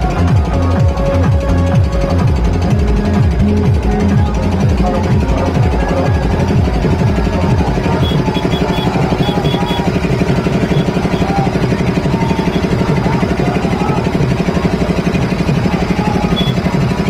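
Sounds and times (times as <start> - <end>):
vehicle engine chugging: 0.0 - 17.0.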